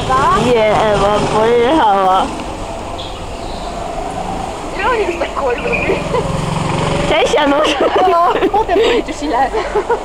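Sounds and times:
go-kart engines droning: 0:00.0 - 0:10.0.

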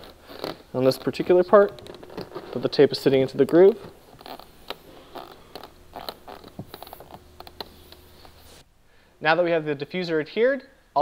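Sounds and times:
hands tapping and rubbing plastic: 0:00.0 - 0:08.4.

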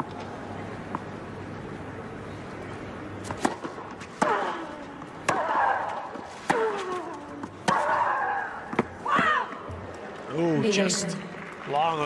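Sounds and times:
racket striking tennis ball: 0:03.2 - 0:08.0.

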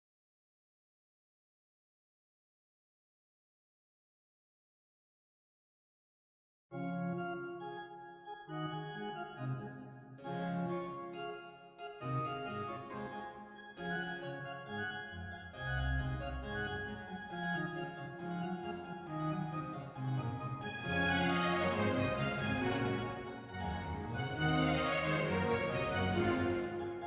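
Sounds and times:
harpsichord and organ baroque piece: 0:06.8 - 0:27.0.

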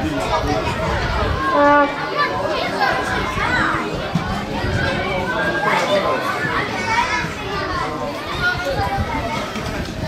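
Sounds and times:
children shouting: 0:00.0 - 0:10.0.

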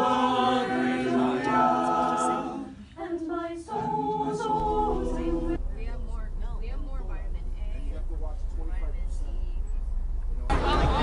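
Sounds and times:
group singing a cappella: 0:00.0 - 0:05.6.

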